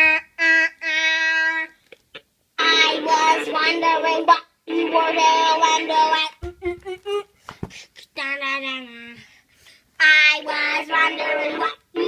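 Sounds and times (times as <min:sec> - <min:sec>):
child singing: 0:00.0 - 0:01.8, 0:02.6 - 0:07.3, 0:10.0 - 0:12.0.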